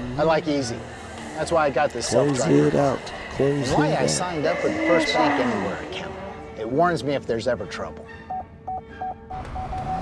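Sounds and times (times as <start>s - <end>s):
car proximity warning beeps: 8.3s - 10.0s.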